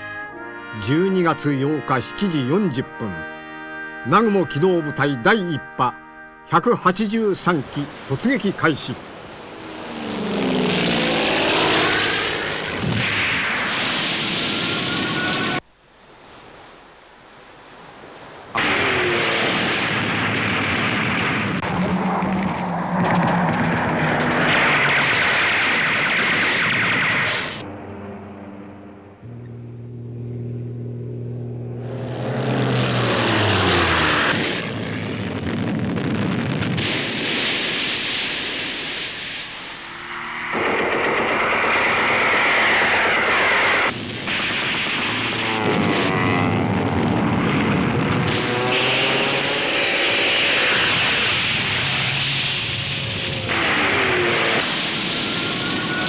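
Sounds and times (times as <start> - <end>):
planes diving: 0.0 - 15.6, 18.2 - 56.0
propeller warplane engines droning: 7.3 - 15.7, 18.6 - 37.2, 37.8 - 56.0
explosions: 11.4 - 15.6, 18.6 - 27.6, 31.7 - 39.7, 40.6 - 49.3, 50.4 - 56.0
heavy gunfire: 18.6 - 21.7, 23.7 - 27.6, 53.5 - 56.0.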